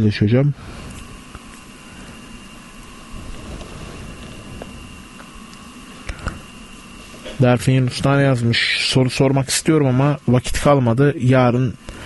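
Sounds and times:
faint hum: 0.0s - 12.0s
microphone hiss: 0.0s - 12.0s.

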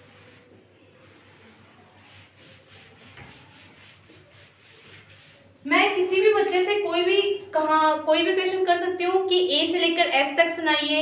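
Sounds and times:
duster rubbing on chalkboard: 0.0s - 6.4s.

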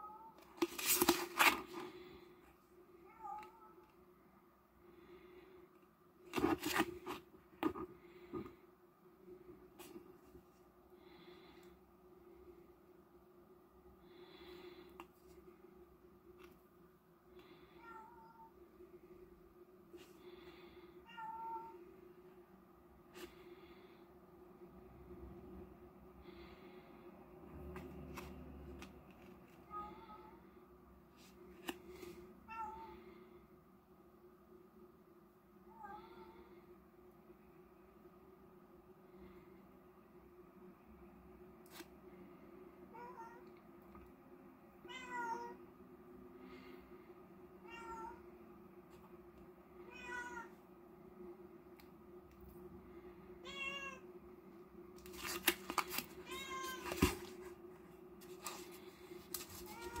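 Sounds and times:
low room hum: 0.0s - 60.0s
plastic packaging crackling: 55.0s - 57.3s.

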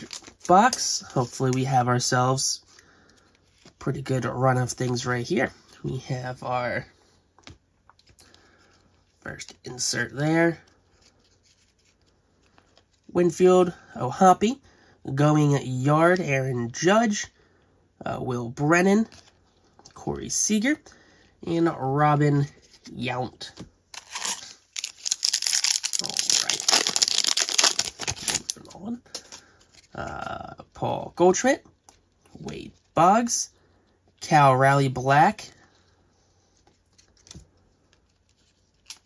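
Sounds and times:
plastic wrapper tearing and crinkling: 0.0s - 1.6s, 23.9s - 29.9s, 38.0s - 39.0s
cards rubbing in hands: 23.9s - 30.1s.

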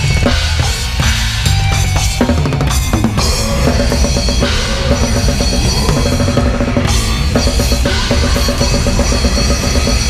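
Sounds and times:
fast drum and cymbal strokes: 0.0s - 10.0s
metal band playing live: 0.0s - 10.0s.

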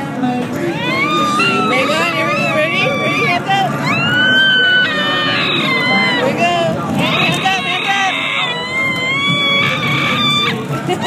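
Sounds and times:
child squealing: 0.8s - 6.4s, 7.0s - 10.6s.

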